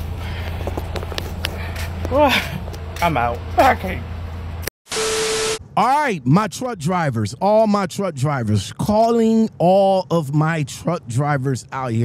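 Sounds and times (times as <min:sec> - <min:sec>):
footsteps on pavement: 0:00.0 - 0:03.8
steady low rumble: 0:00.0 - 0:04.7.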